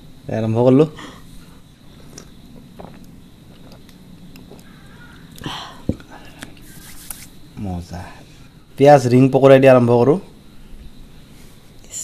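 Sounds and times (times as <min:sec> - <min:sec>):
sipping and swallowing: 0:01.9 - 0:04.7
breathy exhale: 0:04.8 - 0:06.4.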